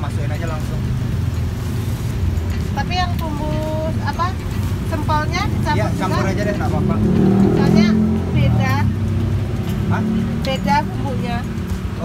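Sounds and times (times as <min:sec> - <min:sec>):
people talking: 0:02.8 - 0:08.9, 0:09.9 - 0:11.5.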